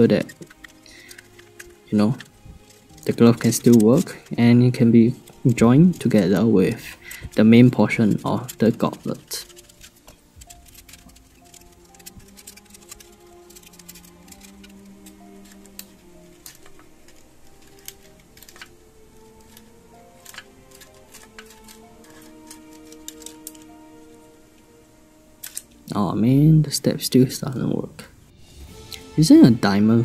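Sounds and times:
quiet orchestral music: 0.0 - 30.0
small metal clicks and taps: 25.4 - 25.7.

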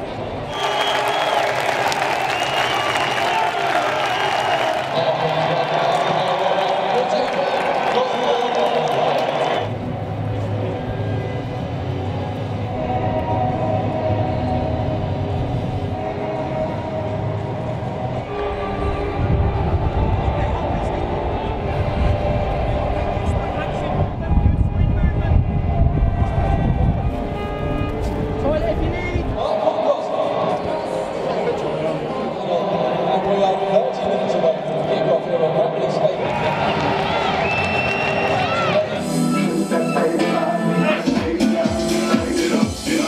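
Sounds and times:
music with held chords: 39.0 - 43.0.

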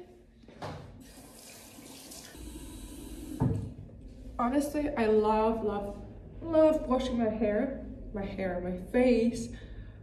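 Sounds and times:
tap running into sink: 3.0 - 3.8.

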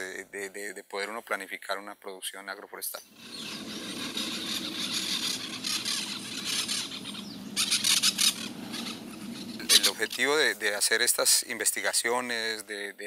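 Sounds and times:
rapidly pulsing wildlife calls: 2.9 - 12.6.

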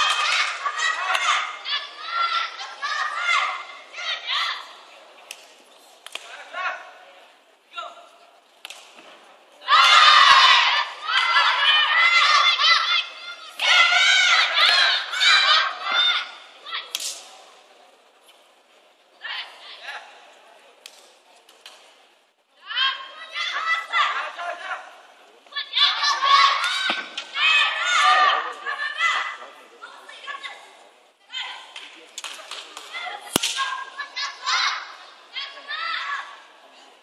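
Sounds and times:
spectators shouting: 0.0 - 4.8, 9.6 - 16.9, 25.6 - 29.4
faint voices in a hall: 0.0 - 37.0
sharp slap: 8.6 - 9.1, 16.9 - 17.4, 31.8 - 33.7.

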